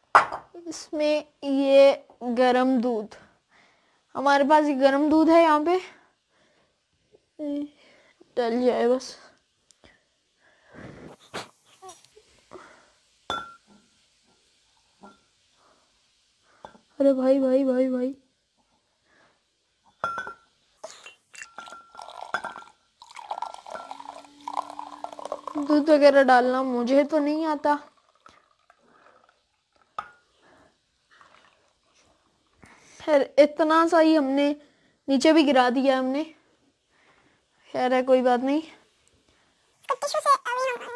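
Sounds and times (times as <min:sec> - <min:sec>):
glass clink: 0:00.2 - 0:00.5, 0:13.3 - 0:13.8, 0:15.0 - 0:15.3, 0:19.8 - 0:20.5, 0:21.3 - 0:25.7, 0:30.0 - 0:30.3
glass mugs knocking and scraping: 0:00.2 - 0:00.5, 0:13.3 - 0:13.8, 0:15.0 - 0:15.2, 0:19.9 - 0:20.5, 0:21.4 - 0:25.8
milk pouring into glass mug: 0:20.1 - 0:32.6.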